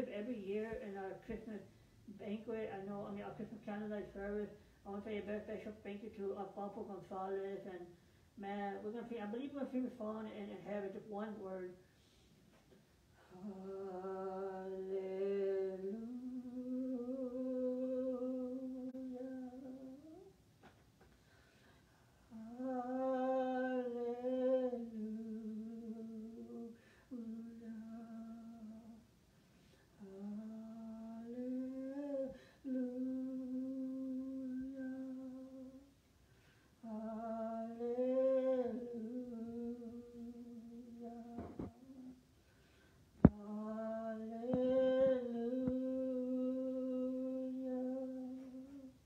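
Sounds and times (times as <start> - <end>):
person singing unaccompanied: 0.0 - 7.8, 13.2 - 20.4, 22.3 - 29.1, 30.0 - 36.0, 36.8 - 42.2, 43.2 - 49.0
person singing a long note: 13.3 - 20.3, 30.0 - 35.9, 43.2 - 49.0.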